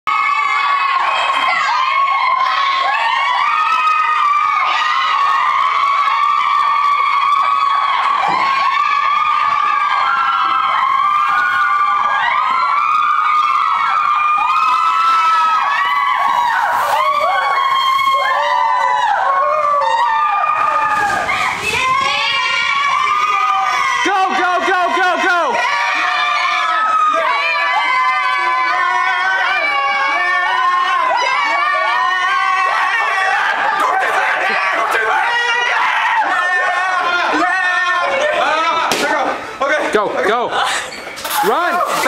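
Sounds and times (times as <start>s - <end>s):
crowd of teenagers shouting: 0.0s - 42.0s.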